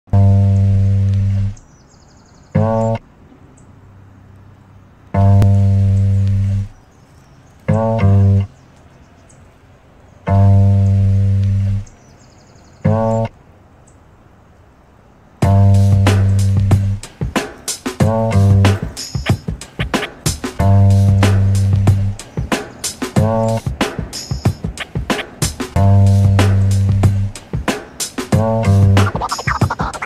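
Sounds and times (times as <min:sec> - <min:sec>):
background music low sustained notes: 0:00.1 - 0:01.6, 0:05.2 - 0:06.7, 0:07.7 - 0:08.5, 0:10.3 - 0:11.9, 0:15.4 - 0:17.1, 0:18.0 - 0:18.9, 0:20.6 - 0:22.5, 0:23.2 - 0:23.8, 0:25.8 - 0:27.5
percussion hits: 0:15.4 - 0:30.0.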